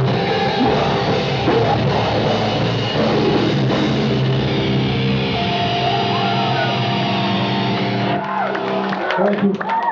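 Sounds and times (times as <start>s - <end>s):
electric guitar chord ringing: 0.0s - 9.0s.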